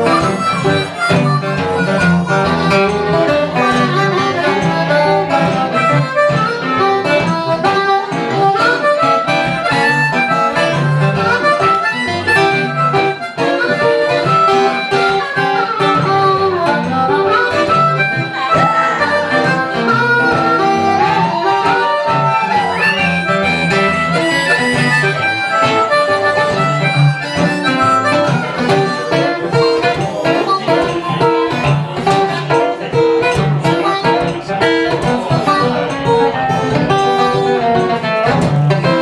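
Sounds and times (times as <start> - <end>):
acoustic guitar accompaniment: 0.0 - 39.0
blues harmonica solo: 0.0 - 39.0.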